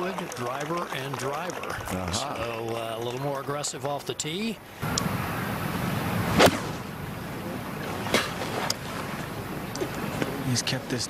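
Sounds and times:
golf club striking ball: 6.3s - 6.9s.

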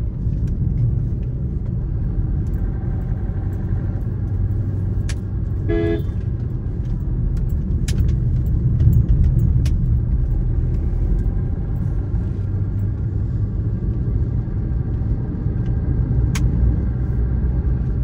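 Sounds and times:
vehicle rumble inside cabin: 0.0s - 18.0s
car horn toot: 5.6s - 6.2s.

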